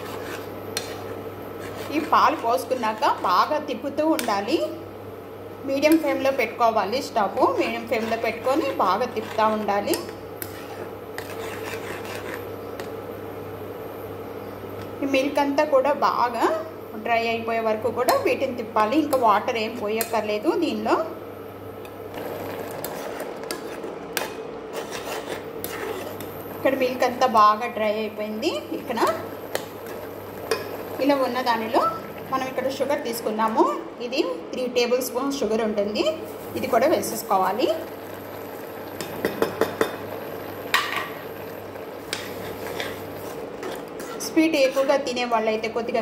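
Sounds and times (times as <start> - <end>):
spoon scraping metal pan: 0.0 - 3.4, 7.4 - 12.9, 22.2 - 27.0, 42.1 - 44.9.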